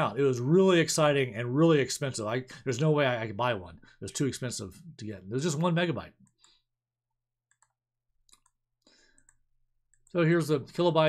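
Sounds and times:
faint clicks: 0:07.5 - 0:10.2.

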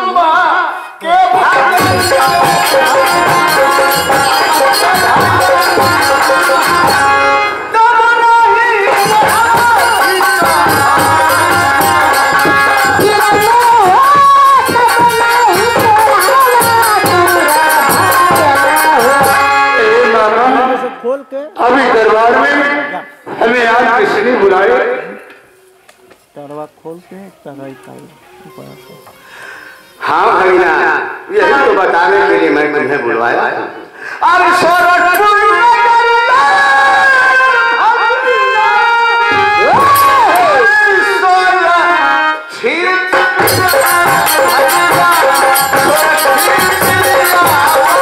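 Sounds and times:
live folk music: 0:00.0 - 0:24.4, 0:25.2 - 0:32.4, 0:33.7 - 0:48.0
drumming: 0:01.3 - 0:07.3, 0:08.8 - 0:19.6, 0:39.3 - 0:40.8, 0:43.2 - 0:48.0.

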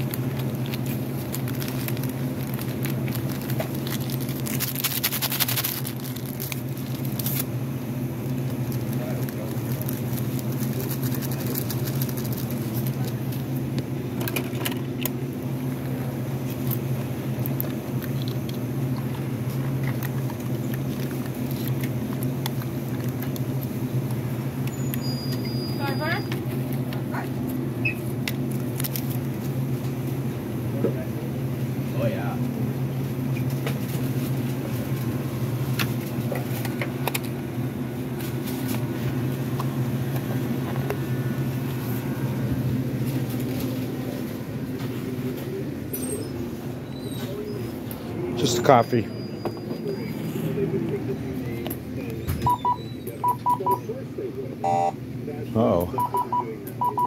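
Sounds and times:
low hum of machines: 0:00.0 - 0:57.0
murmur of voices: 0:43.1 - 0:57.0
high electronic key beeps: 0:52.4 - 0:53.8, 0:54.6 - 0:55.0, 0:55.9 - 0:57.0.

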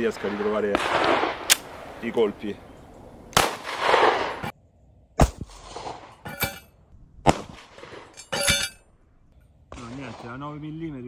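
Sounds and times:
pistol shots: 0:00.2 - 0:01.8, 0:03.3 - 0:04.5
ringing clink: 0:08.2 - 0:08.8.

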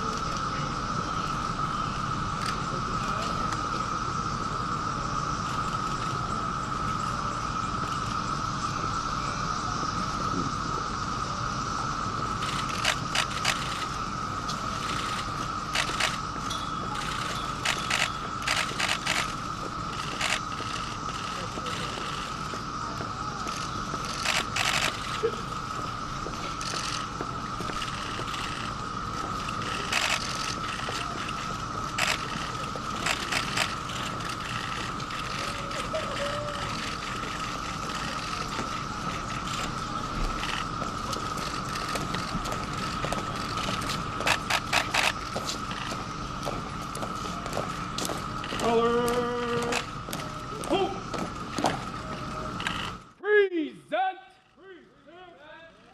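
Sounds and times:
steady high-pitched hum: 0:00.0 - 0:55.9
camera shutters clicking: 0:32.0 - 0:38.2, 0:43.6 - 0:45.9.

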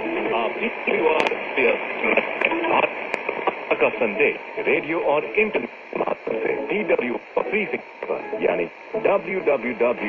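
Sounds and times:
muffled radio voice: 0:00.0 - 0:10.0
static clicks: 0:00.0 - 0:10.0
steady radio hiss: 0:00.0 - 0:10.0.

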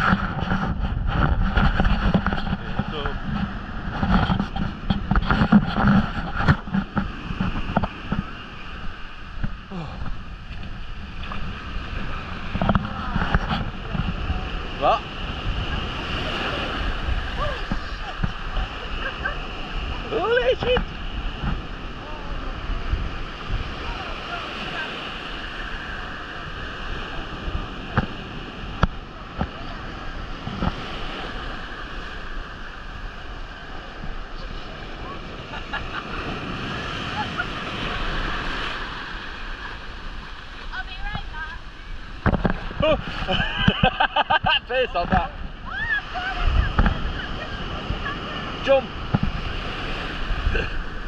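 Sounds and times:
surf breaking on beach: 0:00.0 - 0:51.0
wind on microphone: 0:00.0 - 0:51.0
person laughing: 0:42.8 - 0:44.7, 0:50.5 - 0:50.9.

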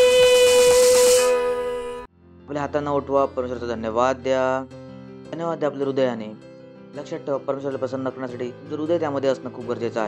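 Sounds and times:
bright hiss: 0:00.0 - 0:02.1
woman singing long note: 0:00.0 - 0:02.1
musical accompaniment: 0:00.0 - 0:03.9.

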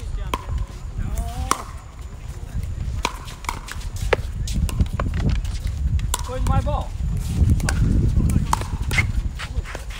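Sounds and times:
paddles hitting plastic ball: 0:02.9 - 0:06.8.

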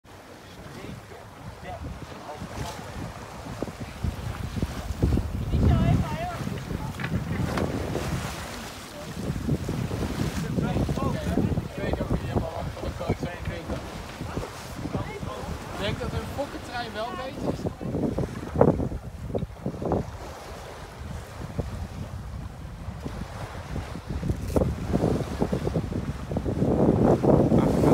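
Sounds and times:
water rushing along hull: 0:00.0 - 0:27.9
wind buffeting microphone: 0:00.6 - 0:27.9.

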